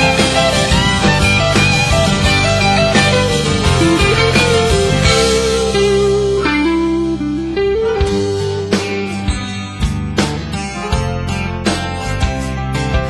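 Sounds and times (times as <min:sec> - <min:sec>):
bass and drums: 0:00.0 - 0:13.0
lead guitar melody: 0:00.0 - 0:13.0.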